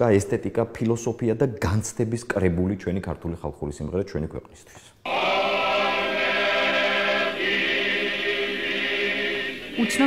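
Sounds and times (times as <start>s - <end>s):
choir singing long chords: 5.0s - 10.0s.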